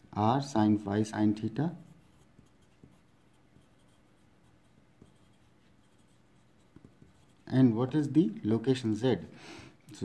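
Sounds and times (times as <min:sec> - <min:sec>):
pencil writing on paper: 0:01.8 - 0:07.5.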